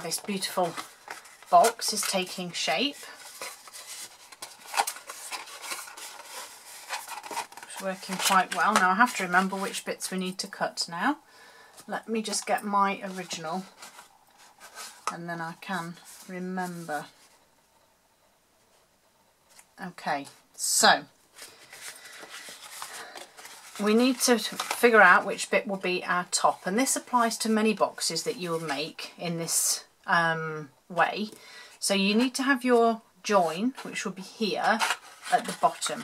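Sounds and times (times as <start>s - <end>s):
cardstock rustling and rubbing: 0.0s - 9.8s, 12.2s - 17.4s, 21.4s - 25.2s, 34.6s - 36.0s.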